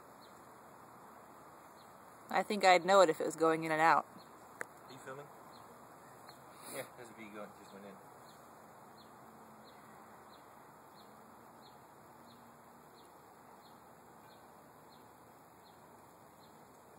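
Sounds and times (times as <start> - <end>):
steady background hiss: 0.0 - 16.9.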